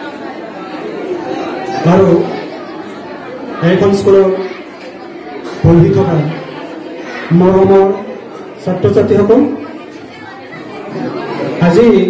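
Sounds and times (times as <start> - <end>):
chatter of many voices: 0.0 - 12.0
man's amplified voice: 1.7 - 2.4, 3.6 - 4.6, 5.6 - 6.5, 7.2 - 9.8, 11.5 - 12.0.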